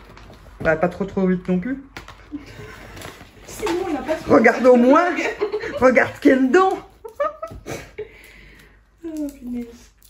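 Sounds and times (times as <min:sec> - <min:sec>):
gift bag rustling: 0:02.4 - 0:07.6
woman's voice: 0:03.5 - 0:06.9.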